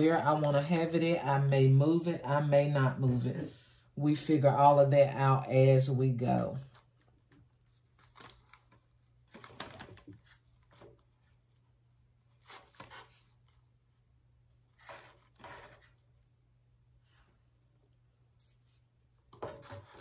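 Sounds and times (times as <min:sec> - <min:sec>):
packaging rustles and clicks: 0:07.9 - 0:11.0.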